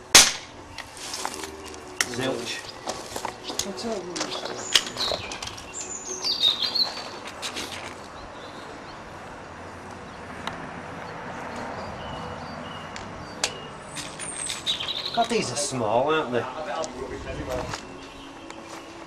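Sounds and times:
birds chirping: 0.0 - 19.0.

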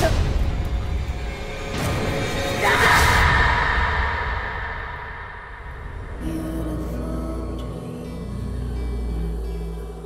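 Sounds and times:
low rumbling drone: 3.0 - 10.0.

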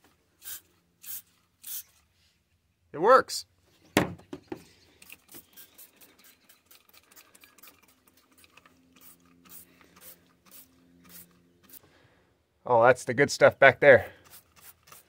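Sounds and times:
trigger spray bottle squirting: 0.4 - 2.0, 5.0 - 11.8, 14.2 - 15.0.

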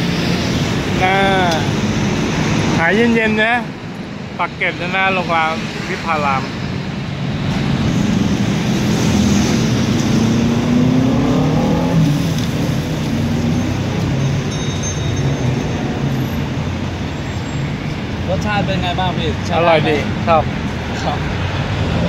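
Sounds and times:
steady traffic rumble: 0.0 - 22.0
vehicle engine passing: 7.6 - 14.1.

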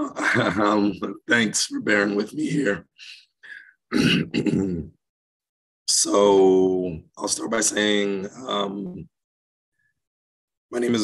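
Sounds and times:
man clearing his throat: 3.9 - 5.0.

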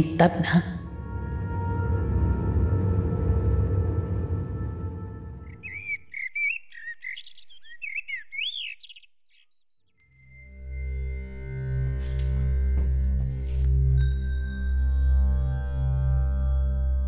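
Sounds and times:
low music: 0.0 - 5.9, 11.0 - 17.0
low music drone with ringing tones: 0.0 - 7.2, 9.7 - 17.0
bird chirps and twitters: 5.5 - 10.0.

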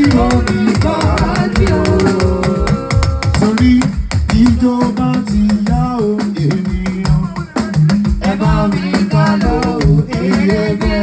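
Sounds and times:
party band music: 0.0 - 11.0
talking drum sliding notes: 0.0 - 11.0.

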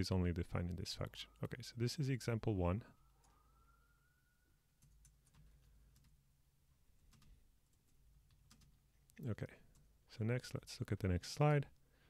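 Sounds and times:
keyboard typing: 4.8 - 6.2, 7.0 - 9.1.

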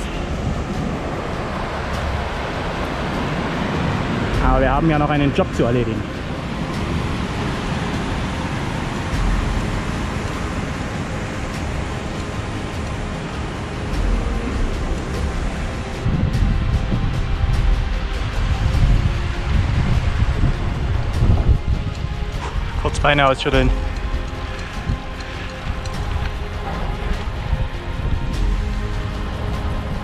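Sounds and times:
whitewater stream rushing: 0.0 - 30.0
wind buffeting microphone: 0.0 - 30.0.

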